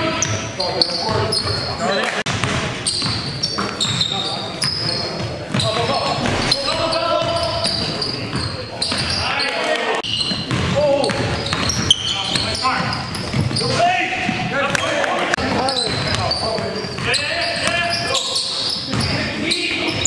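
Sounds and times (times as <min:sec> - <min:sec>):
players calling out: 0:00.0 - 0:20.0
players' footwork: 0:00.0 - 0:20.0
basketball bouncing on court: 0:02.3 - 0:09.2, 0:10.0 - 0:20.0.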